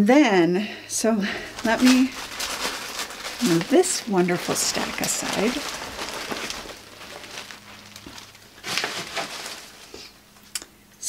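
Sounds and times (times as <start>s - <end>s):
papers rustling: 1.3s - 10.2s.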